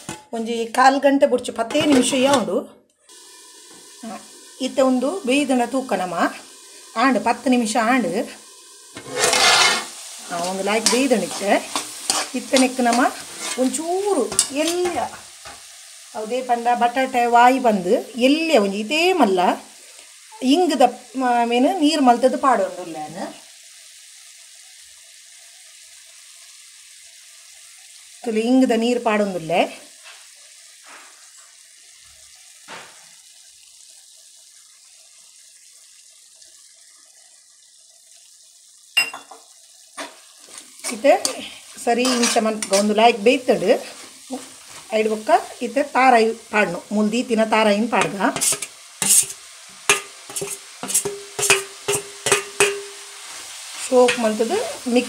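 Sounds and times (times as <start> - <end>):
potatoes and onions sizzling in oil: 0.0 - 55.0
spoon scraping frying pan: 8.9 - 15.7, 39.0 - 45.6, 48.0 - 54.8.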